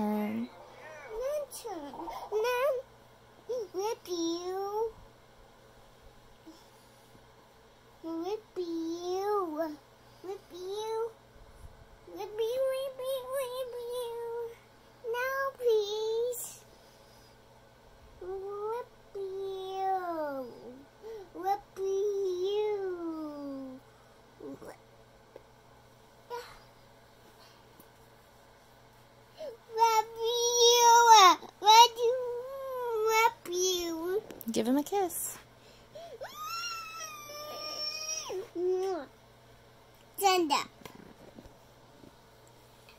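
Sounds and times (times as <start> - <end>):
child squealing: 36.2 - 38.5.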